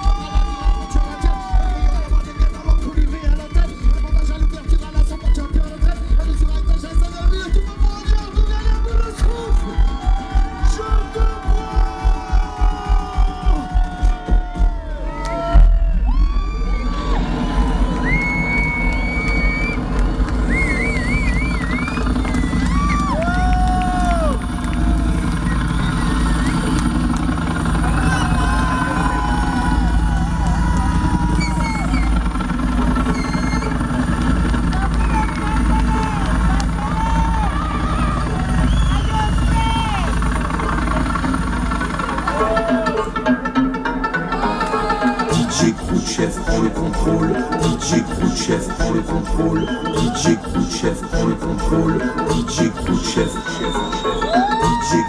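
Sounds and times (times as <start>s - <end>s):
crowd cheering: 0.0s - 4.8s, 5.6s - 55.0s
deep droning low end: 0.0s - 43.5s, 44.2s - 55.0s.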